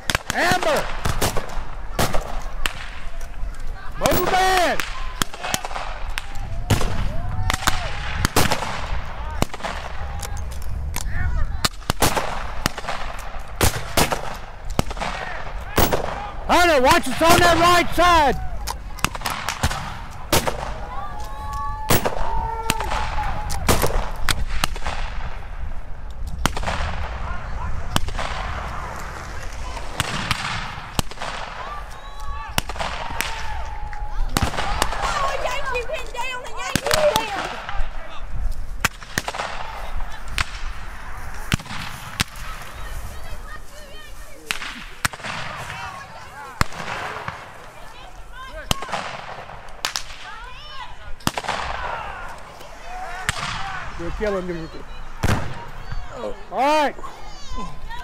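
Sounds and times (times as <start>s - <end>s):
people shouting: 1.6s - 8.2s, 15.0s - 23.9s, 27.2s - 38.3s, 39.4s - 49.2s, 50.2s - 58.0s
rifle shots: 11.6s - 16.2s.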